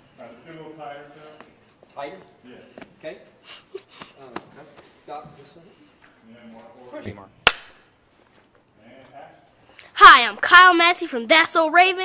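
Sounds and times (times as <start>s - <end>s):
sharp knock: 7.4s - 7.8s.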